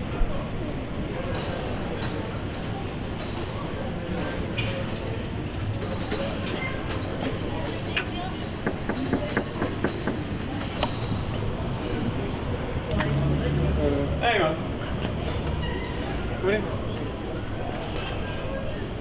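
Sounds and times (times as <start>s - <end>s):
street rumble: 8.1s - 18.7s.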